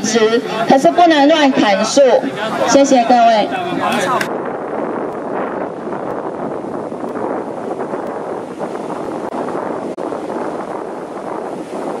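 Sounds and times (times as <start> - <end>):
wind on microphone: 0.0 - 12.0
sea surf washing over rocks: 1.8 - 12.0.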